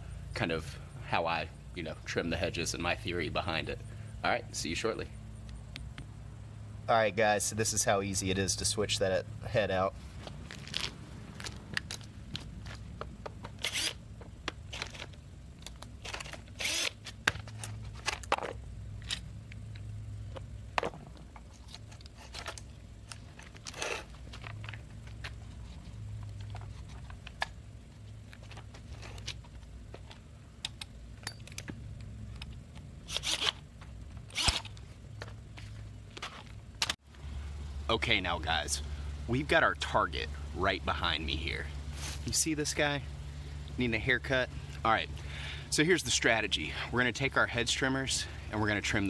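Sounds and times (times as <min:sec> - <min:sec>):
low steady hum: 0:00.0 - 0:49.0.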